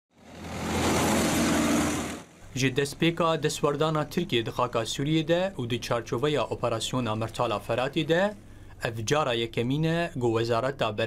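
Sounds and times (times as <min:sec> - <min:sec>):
armoured vehicles driving: 0:00.1 - 0:02.5.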